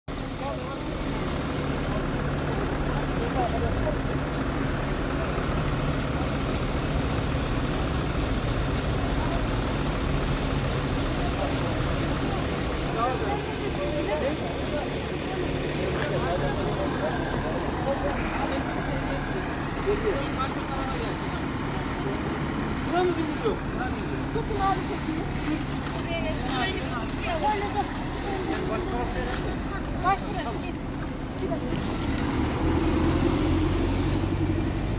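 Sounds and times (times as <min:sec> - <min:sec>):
people talking at once: 0:00.1 - 0:32.1
engine humming: 0:00.1 - 0:34.9.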